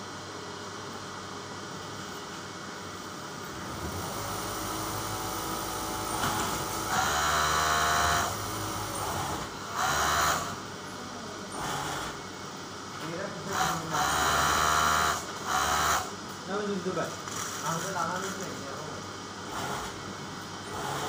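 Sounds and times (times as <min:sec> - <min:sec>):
steady background hum: 0:00.0 - 0:21.0
sewing machine whirring: 0:03.6 - 0:10.6, 0:13.5 - 0:16.1, 0:19.5 - 0:21.0.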